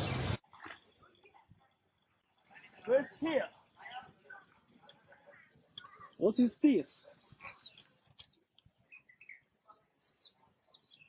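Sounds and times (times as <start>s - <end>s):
small high chirps: 0.6s - 11.0s.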